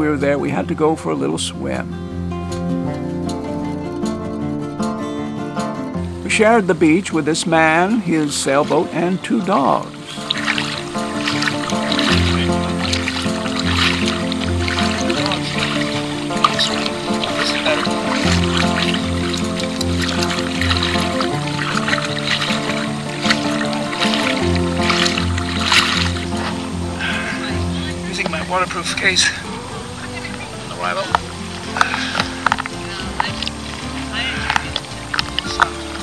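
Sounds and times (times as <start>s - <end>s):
held chords: 0.7s - 36.0s.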